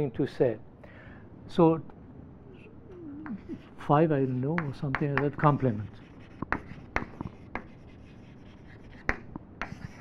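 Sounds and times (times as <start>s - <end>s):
chalk writing on blackboard: 3.2s - 10.0s.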